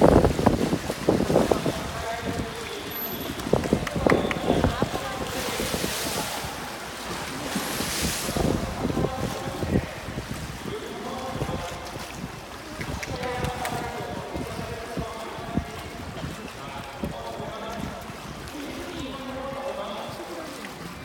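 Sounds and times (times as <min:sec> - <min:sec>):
pool water splashing: 0:00.0 - 0:21.0.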